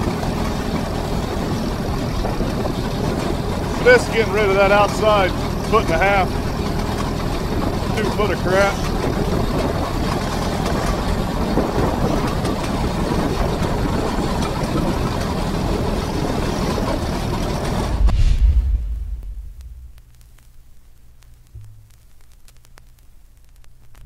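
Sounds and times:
tractor running: 0:00.0 - 0:18.1
loud low thump: 0:17.8 - 0:20.2, 0:21.6 - 0:22.0
scattered clicks: 0:19.0 - 0:24.0.

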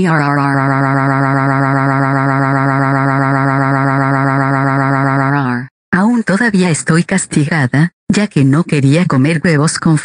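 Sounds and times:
text-to-speech voice holding vowel: 0:00.0 - 0:06.2.

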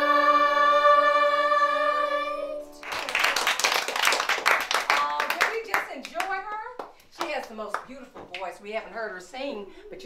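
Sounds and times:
people clapping: 0:02.8 - 0:08.5.

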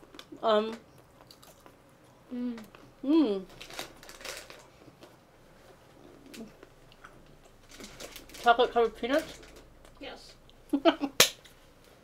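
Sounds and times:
person chewing crunchy food: 0:00.0 - 0:02.9
person humming mm: 0:02.3 - 0:03.4.

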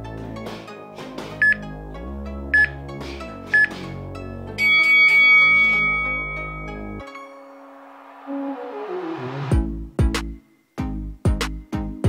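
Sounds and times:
background music: 0:00.0 - 0:12.0
long higher timer beep: 0:04.6 - 0:07.0.

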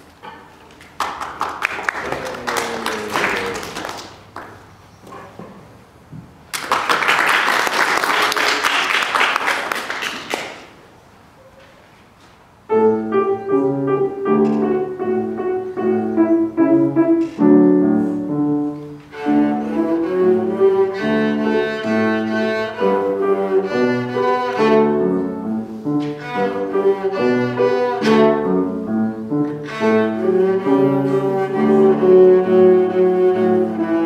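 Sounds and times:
audience applause: 0:01.0 - 0:04.6, 0:06.5 - 0:10.7
gentle grand piano notes: 0:12.7 - 0:34.0.

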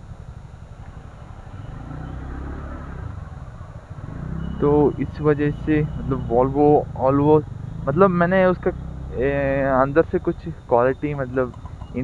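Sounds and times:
scooter engine running: 0:00.0 - 0:12.0.

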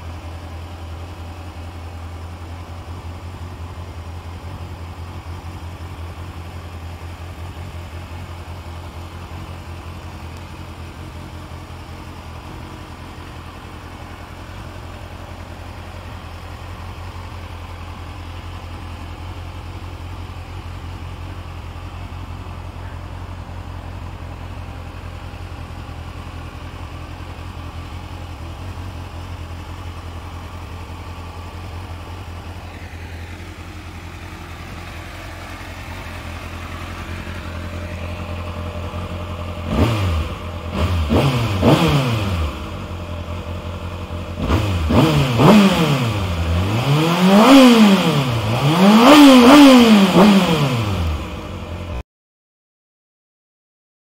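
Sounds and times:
motorcycle engine idling: 0:00.0 - 0:52.0
engine revving: 0:32.3 - 0:52.0.

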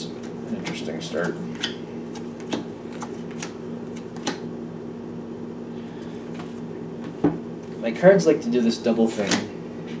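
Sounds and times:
low electrical hum: 0:00.0 - 0:10.0
cards shuffled by hand: 0:02.1 - 0:04.4.

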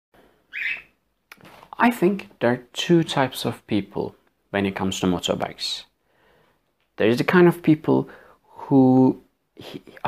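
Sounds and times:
cockatiel chirp: 0:00.5 - 0:01.0.

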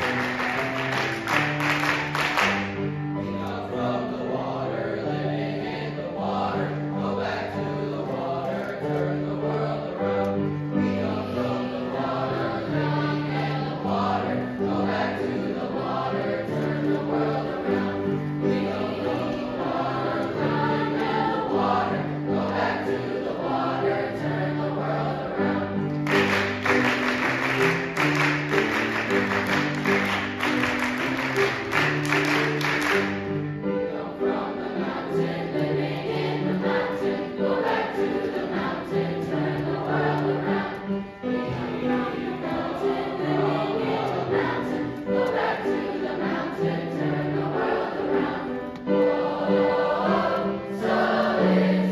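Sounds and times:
children's choir singing: 0:00.0 - 0:51.9
piano accompaniment: 0:00.0 - 0:51.9.

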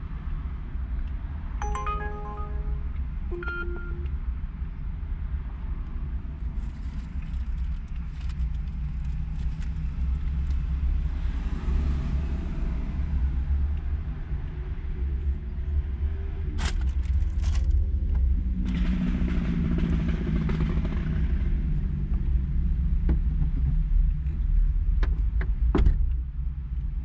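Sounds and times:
electronic chime: 0:01.6 - 0:04.1.

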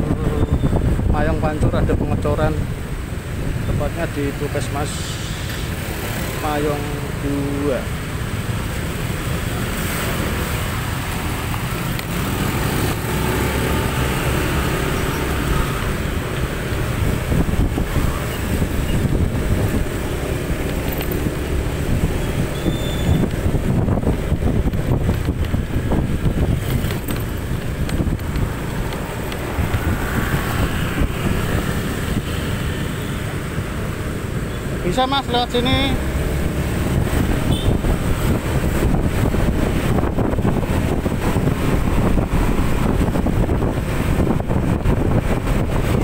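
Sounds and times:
wind on microphone: 0:00.0 - 0:03.9, 0:09.0 - 0:34.5, 0:35.8 - 0:46.0
motorcycle engine rumble: 0:05.0 - 0:34.9, 0:35.8 - 0:46.0.

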